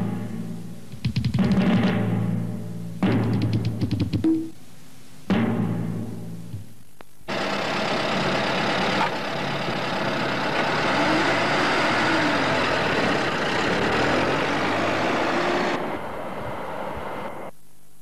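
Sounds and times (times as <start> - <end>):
sharp knock: 5.3 - 6.7
car engine driving off: 7.3 - 17.5.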